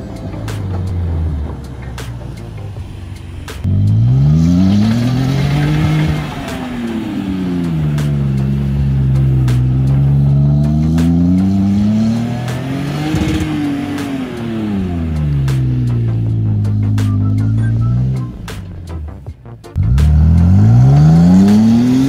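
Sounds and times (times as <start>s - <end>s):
pickup truck engine revving: 0.0s - 22.0s.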